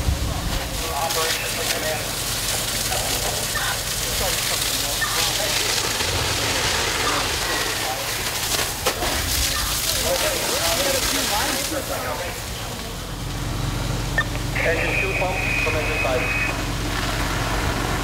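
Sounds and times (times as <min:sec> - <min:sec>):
scattered voices: 0:00.0 - 0:13.2, 0:14.0 - 0:16.6
fire engines droning: 0:00.0 - 0:18.0
hose spraying water: 0:00.0 - 0:18.0
radio voice: 0:00.8 - 0:02.2, 0:02.8 - 0:05.7, 0:14.2 - 0:16.6.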